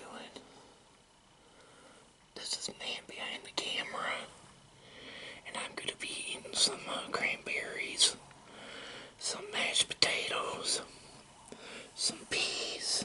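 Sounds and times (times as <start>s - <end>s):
man whispering: 0.0s - 0.4s, 2.4s - 4.4s, 5.4s - 8.2s, 9.2s - 10.9s, 12.0s - 13.0s.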